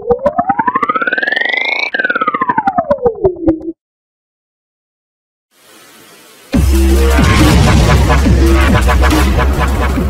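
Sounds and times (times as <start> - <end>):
synthesized pulsing gliding tone: 0.0 - 3.8.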